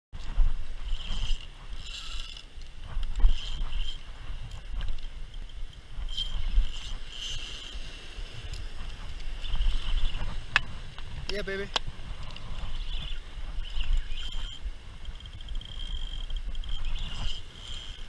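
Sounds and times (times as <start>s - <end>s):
wind rumble: 0.1s - 18.0s
fishing reel whirring: 0.2s - 18.0s.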